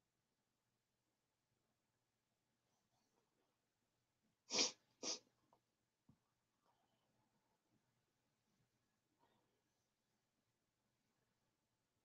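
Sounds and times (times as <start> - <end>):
sharp breaths through nose: 4.5 - 5.2.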